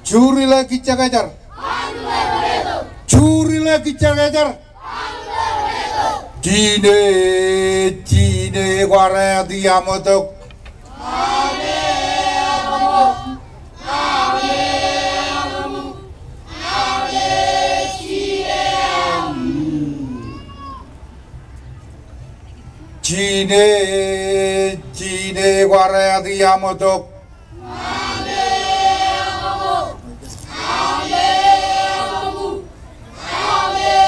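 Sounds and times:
man calling through a microphone: 0:00.0 - 0:01.4, 0:03.1 - 0:04.6, 0:06.4 - 0:10.5, 0:19.0 - 0:20.7, 0:23.0 - 0:27.3
children chanting together: 0:01.5 - 0:03.0, 0:04.8 - 0:06.3, 0:10.9 - 0:20.8, 0:27.6 - 0:34.0.

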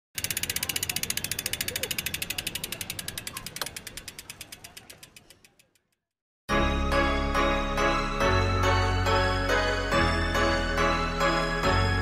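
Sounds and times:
bicycle freewheel ratchet clicking: 0:00.2 - 0:06.0.

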